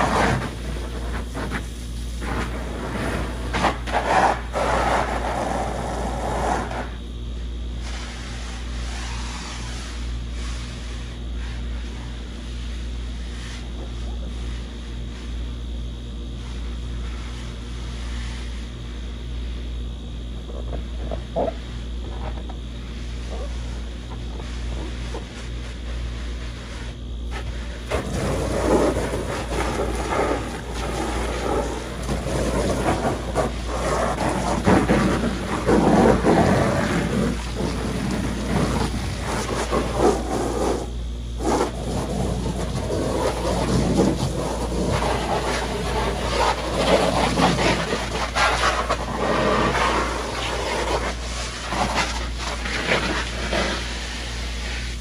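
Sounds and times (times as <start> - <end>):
hose spraying water on vinyl pool: 0.0 - 19.7, 20.4 - 55.0.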